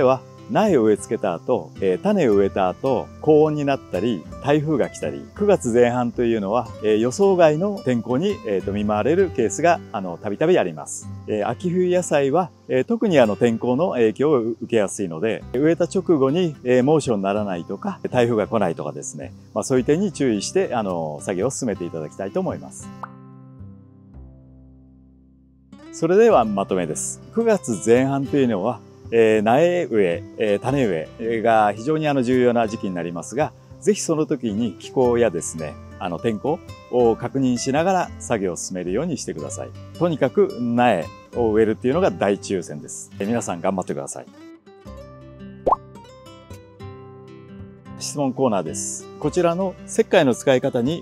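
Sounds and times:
soft background music: 0.0s - 24.6s, 25.7s - 51.0s.

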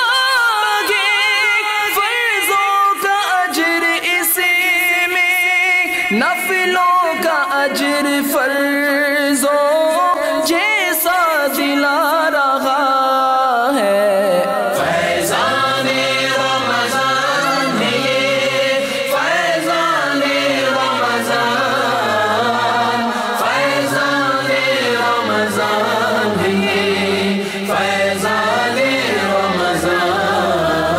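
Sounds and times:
unaccompanied devotional chanting: 0.0s - 30.9s
low vocal drone: 13.4s - 30.9s.

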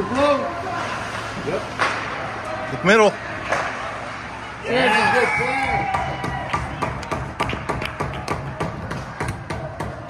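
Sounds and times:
sharp taps and claps: 6.0s - 9.9s.

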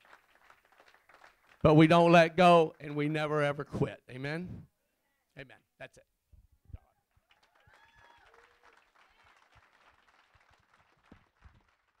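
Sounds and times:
faint audience applause: 0.0s - 3.0s, 7.1s - 12.0s.

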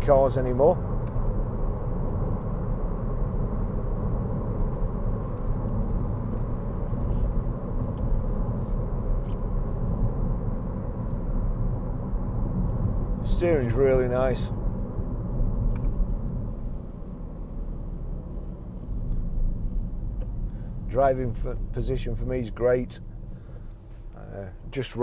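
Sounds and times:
car cabin road noise: 0.0s - 25.0s.

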